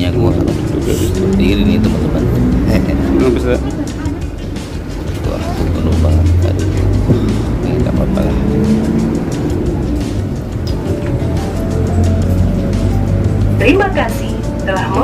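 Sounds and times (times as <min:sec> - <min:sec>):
passengers' voices: 0:00.0 - 0:12.8
bus engine drone: 0:00.0 - 0:15.0
music playing: 0:00.0 - 0:15.0.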